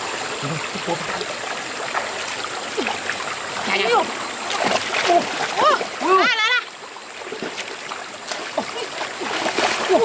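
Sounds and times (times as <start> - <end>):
stream running: 0.0 - 10.0.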